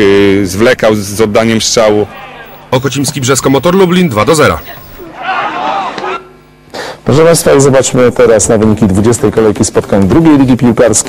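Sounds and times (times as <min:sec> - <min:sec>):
faint steady tone: 0:02.0 - 0:05.1
raised voices: 0:02.0 - 0:06.4.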